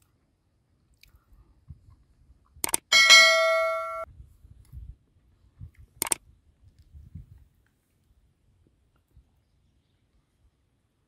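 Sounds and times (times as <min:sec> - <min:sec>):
notification bell ding: 0:02.9 - 0:04.1.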